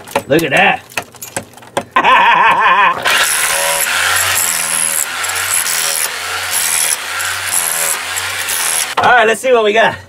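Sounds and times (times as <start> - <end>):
hand tool chipping clay and rock: 3.1 - 9.0.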